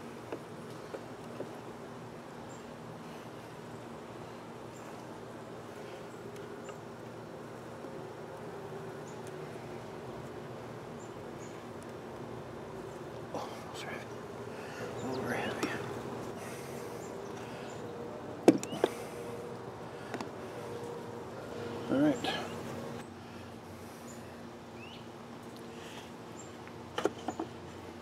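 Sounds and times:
honeybees humming: 0:00.0 - 0:28.0.

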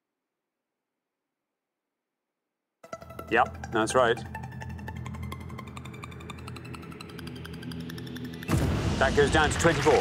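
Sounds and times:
low musical drone: 0:02.9 - 0:09.0
applause: 0:09.2 - 0:10.0.

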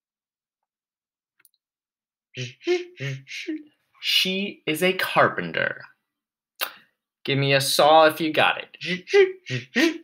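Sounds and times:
man talking: 0:02.4 - 0:06.0, 0:07.2 - 0:09.9.

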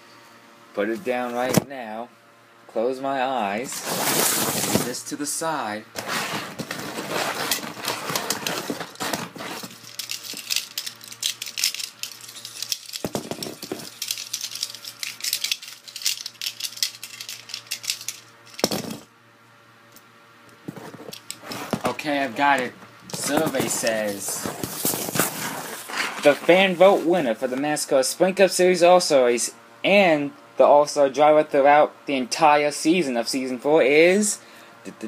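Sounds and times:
faint steady hum: 0:00.0 - 0:35.0
small hard objects rattling: 0:06.6 - 0:19.0.

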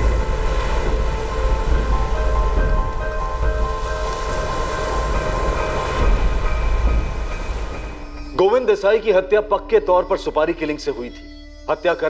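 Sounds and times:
wind buffeting microphone: 0:00.0 - 0:08.1
droning background music chord: 0:00.0 - 0:12.0.

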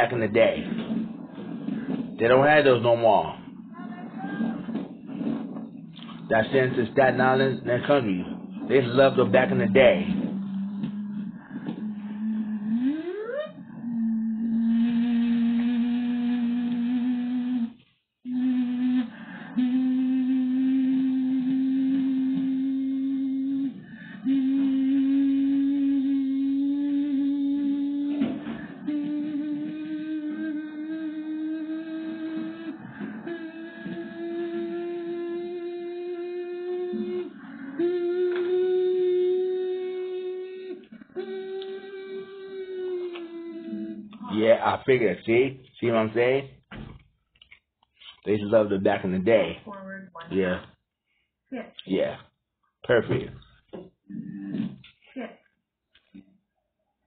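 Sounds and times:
man humming: 0:00.0 - 0:44.8.

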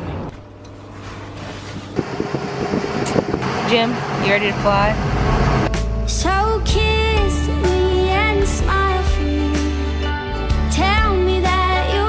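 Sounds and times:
jet cabin hum: 0:00.0 - 0:08.5.

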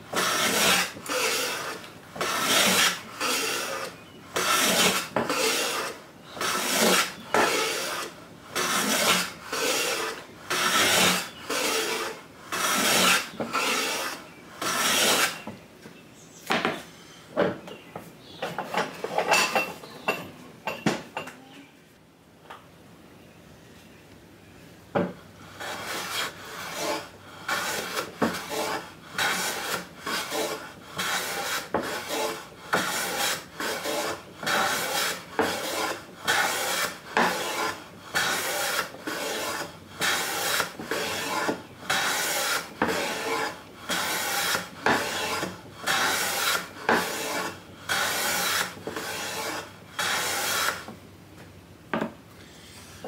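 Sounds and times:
hand plane shaving wood: 0:00.1 - 0:15.4, 0:25.6 - 0:50.9.

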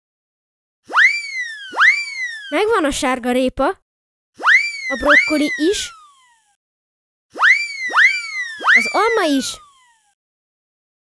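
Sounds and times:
cartoon pitch sweeps: 0:00.9 - 0:02.9, 0:04.4 - 0:06.5, 0:07.4 - 0:10.2.

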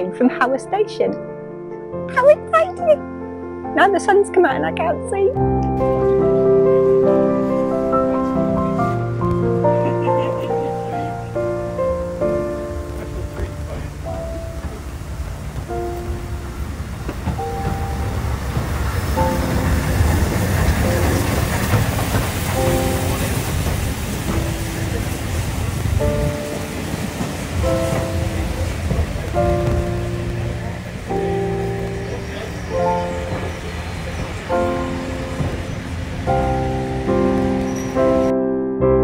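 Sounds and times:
slow background music: 0:00.0 - 0:39.0
steam locomotive rumble and hiss: 0:05.9 - 0:38.3.

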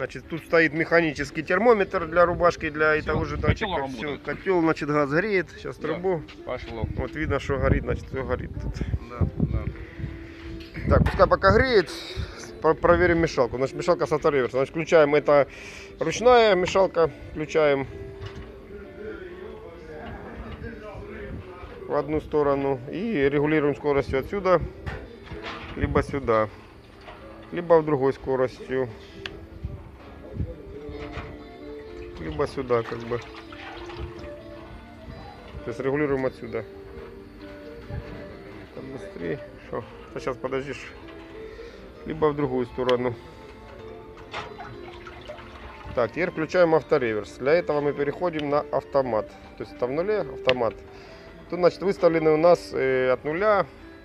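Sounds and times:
water swirling and sloshing: 0:32.0 - 0:34.7, 0:44.3 - 0:46.6
water splash: 0:32.2 - 0:34.4, 0:44.3 - 0:46.1.

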